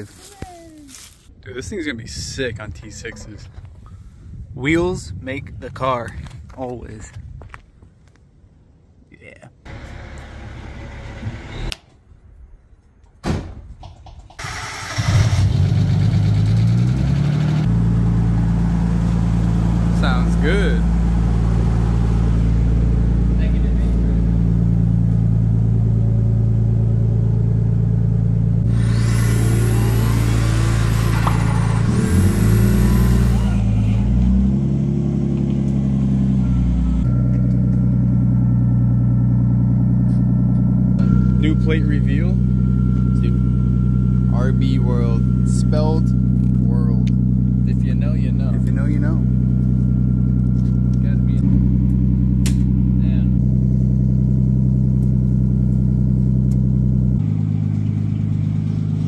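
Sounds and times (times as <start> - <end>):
car engine starting and idling: 9.7 - 11.8, 13.6 - 59.0.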